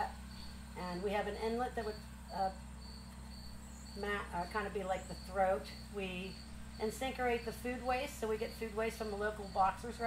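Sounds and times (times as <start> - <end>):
insect chirping: 0.0 - 10.0
low steady hum: 0.0 - 10.0.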